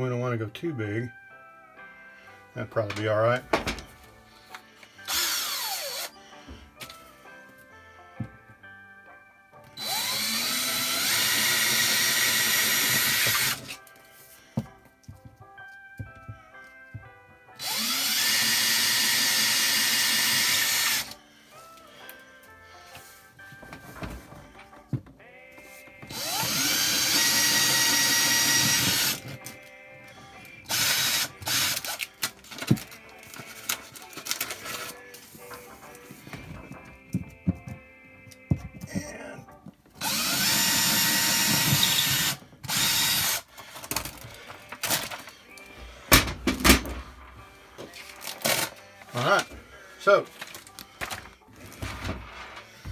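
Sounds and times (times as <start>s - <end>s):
cordless drill boring drywall: 5.0s - 6.2s, 9.8s - 13.8s, 17.6s - 21.2s, 26.1s - 29.3s, 30.7s - 32.0s, 40.0s - 43.5s
drill handling clicks and knocks: 26.0s - 29.6s, 30.7s - 34.9s, 39.6s - 45.3s.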